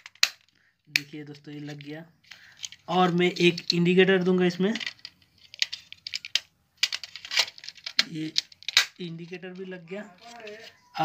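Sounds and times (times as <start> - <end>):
small plastic clicks: 0.0 - 3.9, 4.6 - 10.8.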